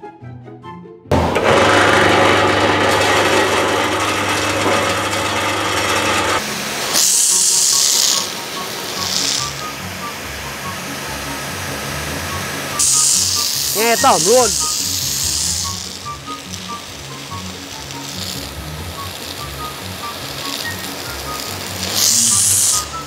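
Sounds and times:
pressure washer motor humming: 1.1s - 23.0s
water jet hissing: 3.2s - 23.0s.

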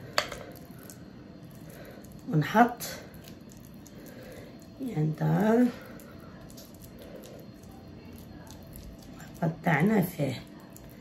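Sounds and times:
spatula squishing cake batter: 0.0s - 11.0s.

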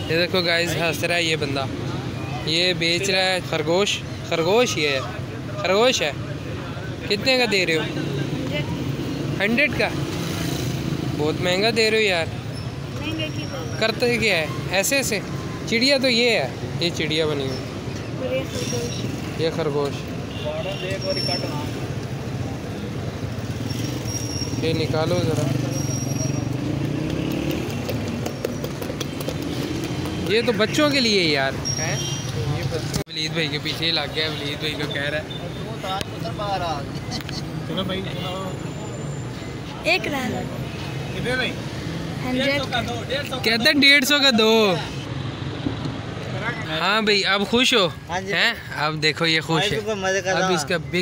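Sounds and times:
street traffic rumble: 0.0s - 51.0s.

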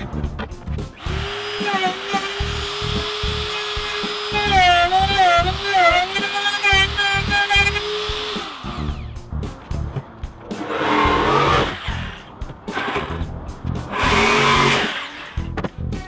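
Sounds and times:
background music with steady beat: 0.0s - 16.0s
router motor running: 1.0s - 9.2s, 10.6s - 13.1s, 13.9s - 15.4s
loud bursts of noise: 13.9s - 15.3s.

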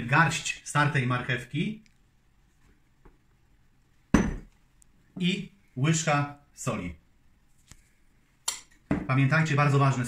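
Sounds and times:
glass bowl knocking on wood: 4.1s - 4.5s.

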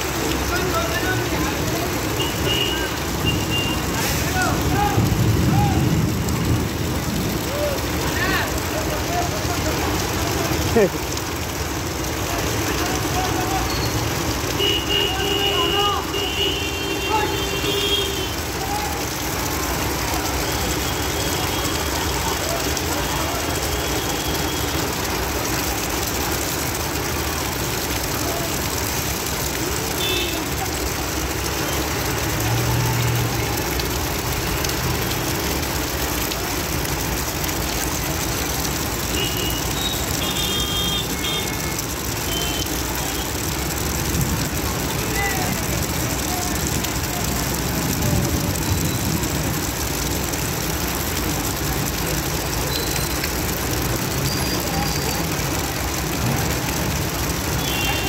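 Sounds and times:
bus driving through standing water: 0.0s - 58.0s
rain traffic on wet road: 0.0s - 58.0s.

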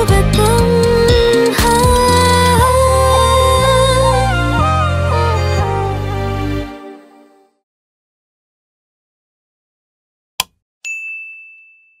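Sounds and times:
bright ringing ding: 10.8s - 12.0s.

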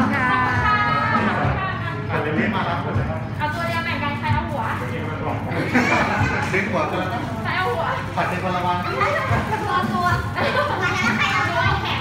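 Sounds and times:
young girls chattering: 8.9s - 12.0s.

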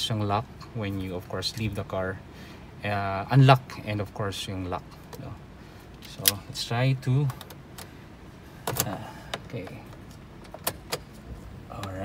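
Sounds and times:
ignition switch clicks: 6.0s - 6.4s, 8.6s - 11.2s.

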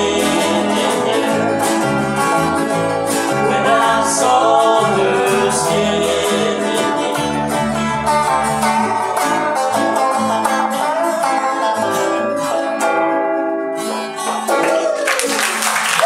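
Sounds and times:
bass guitar: 0.0s - 15.0s
electric guitar: 0.0s - 16.0s.

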